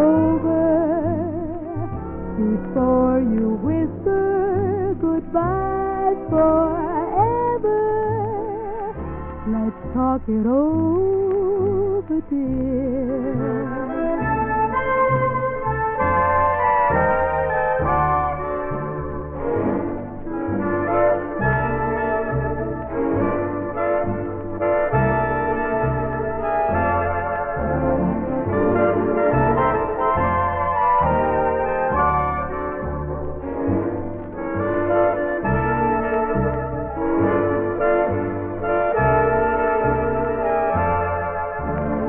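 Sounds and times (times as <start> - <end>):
steady bass line: 0.0 - 42.0
swing band brass section: 13.4 - 42.0.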